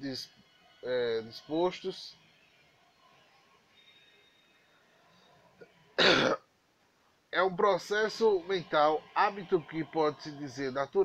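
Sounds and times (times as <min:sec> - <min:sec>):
man clearing throat: 0:06.0 - 0:06.4.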